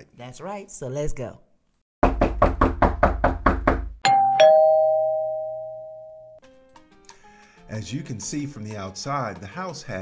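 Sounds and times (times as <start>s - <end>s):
knocking on door: 2.0s - 4.0s
two-note doorbell chime: 4.0s - 6.4s.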